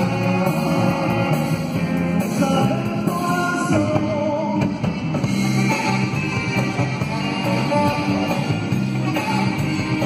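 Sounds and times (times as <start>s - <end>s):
drum kit: 0.0s - 10.0s
electric guitars: 0.0s - 10.0s
keyboard: 0.0s - 10.0s
saxophones: 5.3s - 10.0s.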